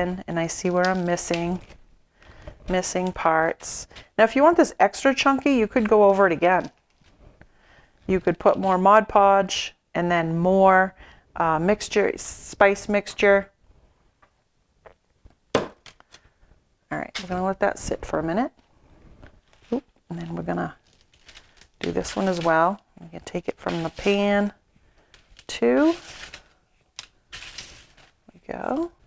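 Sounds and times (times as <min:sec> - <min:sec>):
gritty rustling of powder: 0:18.9 - 0:26.6, 0:27.3 - 0:28.9.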